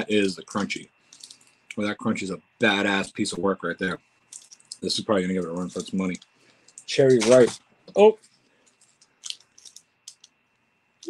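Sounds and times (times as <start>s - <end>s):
snack packaging crinkles: 1.1s - 1.5s, 8.6s - 10.4s.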